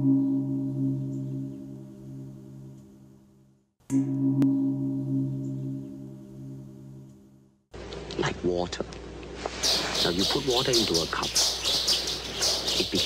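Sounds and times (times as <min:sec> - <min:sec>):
gong ringing: 0:00.0 - 0:02.8, 0:03.9 - 0:07.4.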